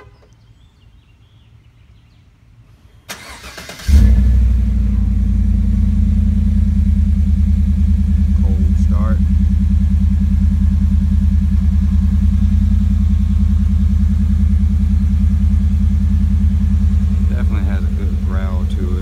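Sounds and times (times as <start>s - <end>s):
truck engine deep idle: 3.9s - 19.0s.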